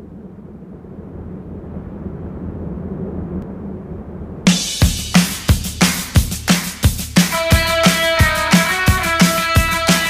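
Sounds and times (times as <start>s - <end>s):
low rumbling drone: 0.0s - 5.9s.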